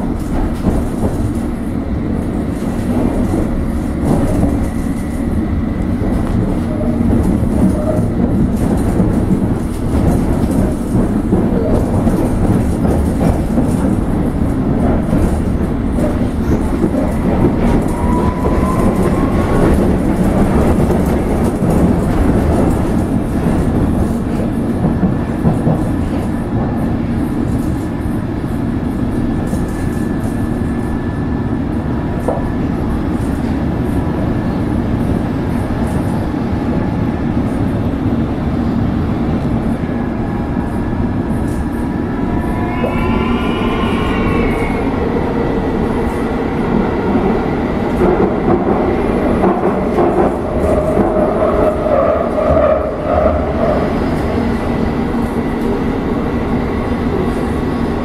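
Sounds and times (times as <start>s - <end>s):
train wheels rumbling on rail: 0.0s - 58.0s.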